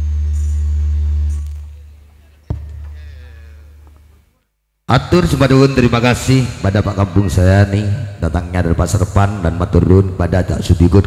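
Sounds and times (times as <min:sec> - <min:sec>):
band sustained low bass chord: 0:00.0 - 0:02.2.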